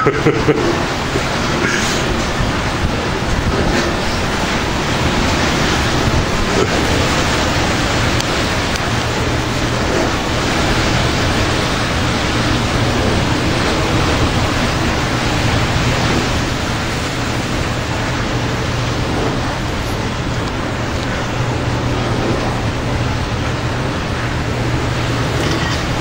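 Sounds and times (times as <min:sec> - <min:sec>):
heavy rain: 0:00.0 - 0:26.0
strong wind: 0:00.0 - 0:26.0.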